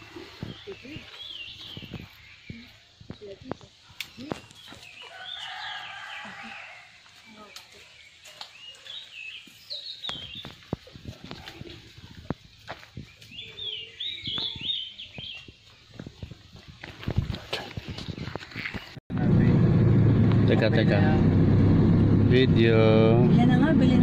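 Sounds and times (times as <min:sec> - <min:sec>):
birds chirping: 0:00.1 - 0:19.0
loud low rumble: 0:19.1 - 0:24.0.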